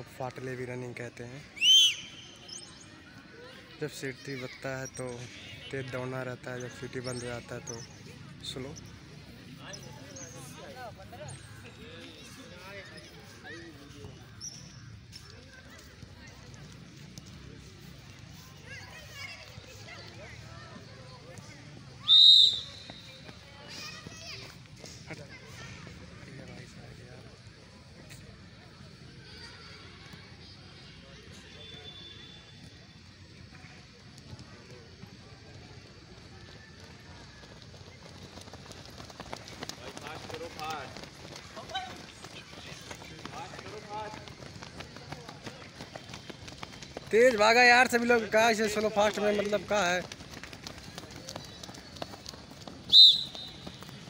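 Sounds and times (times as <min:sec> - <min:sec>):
faint distant voices: 0:00.0 - 0:47.4
outdoor background noise: 0:00.0 - 0:54.0
runners' footsteps on dirt: 0:09.3 - 0:26.8, 0:31.6 - 0:54.0.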